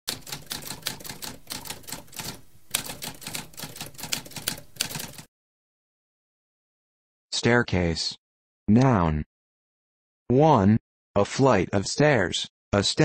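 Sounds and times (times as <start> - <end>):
typewriter keys clacking: 0.1 - 5.3.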